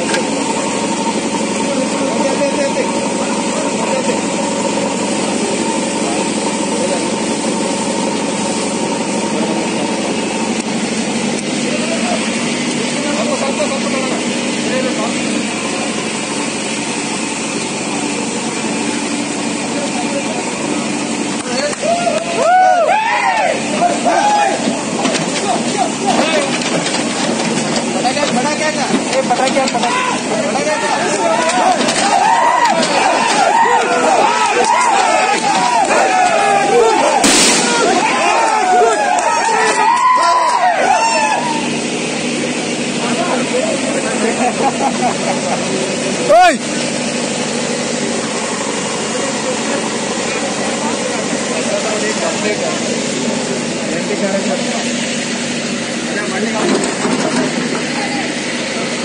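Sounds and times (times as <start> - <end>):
diesel engine running: 0.0 - 59.0
people calling out: 10.8 - 15.3, 20.5 - 26.6, 29.6 - 53.8
loud steady hiss: 32.1 - 59.0.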